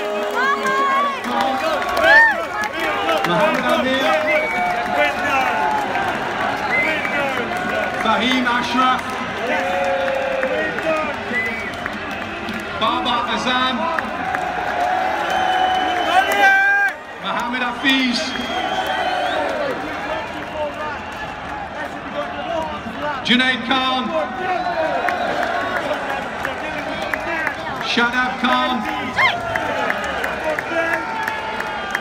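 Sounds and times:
loud shout: 0.0 - 7.9, 9.4 - 11.5, 14.3 - 17.0, 23.7 - 32.0
crowd talking and shouting: 0.0 - 32.0.

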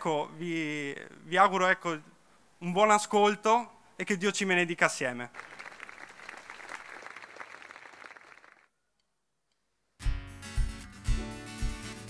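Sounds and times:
audience applauding: 5.3 - 8.7.

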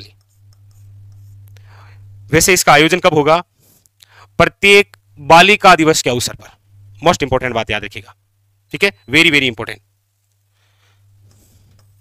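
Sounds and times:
marker pen writing on whiteboard: 0.0 - 1.5
low steady hum: 0.0 - 12.0
faint scratching: 0.1 - 1.6.

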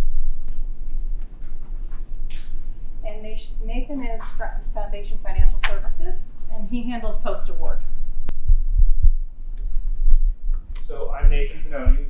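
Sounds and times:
dull low thumps: 0.0 - 12.0
steady low hum: 0.0 - 12.0.

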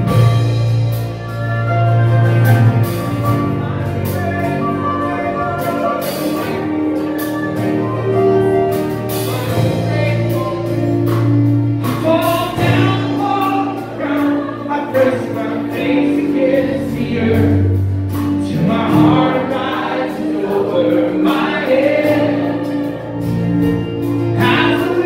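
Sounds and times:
acoustic guitar: 0.0 - 25.0
keyboard: 0.0 - 25.0
voices singing: 1.0 - 25.0.

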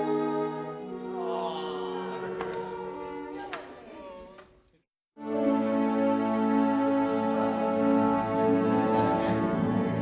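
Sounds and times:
orchestral music with held chords: 0.0 - 3.4, 5.2 - 10.0
flutes: 0.0 - 4.2.

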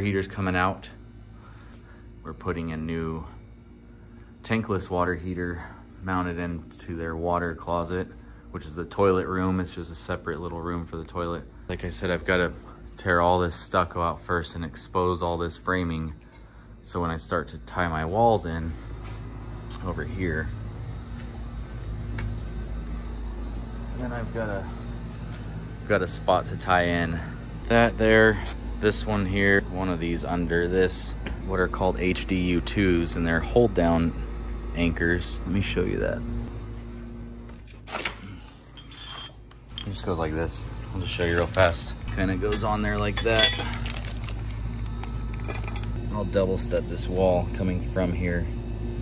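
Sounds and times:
low machine hum: 0.0 - 49.0
plastic bag crinkling: 43.6 - 45.7.

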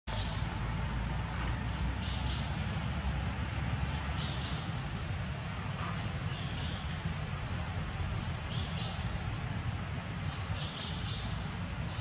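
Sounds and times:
low rumble with hiss: 0.1 - 12.0.

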